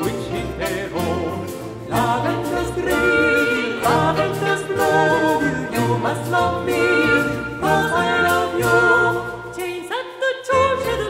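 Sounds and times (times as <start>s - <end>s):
bowed strings: 0.0s - 10.0s
several voices singing: 0.0s - 11.0s.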